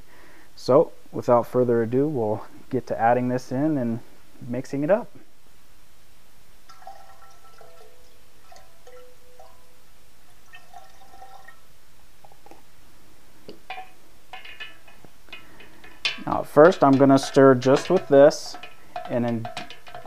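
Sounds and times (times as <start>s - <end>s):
liquid trickling into glass: 6.7s - 9.7s, 10.3s - 12.6s.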